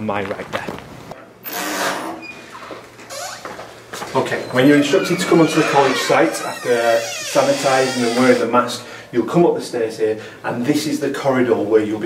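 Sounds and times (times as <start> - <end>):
room noise: 0.0 - 10.1
footsteps squeaking and shuffling: 2.3 - 8.5.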